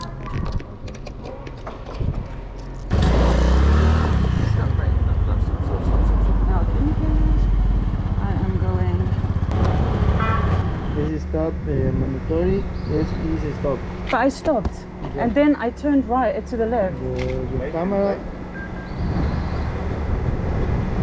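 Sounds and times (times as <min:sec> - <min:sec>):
scooter engine rumble: 0:00.0 - 0:12.0
wind buffeting microphone: 0:18.3 - 0:21.0.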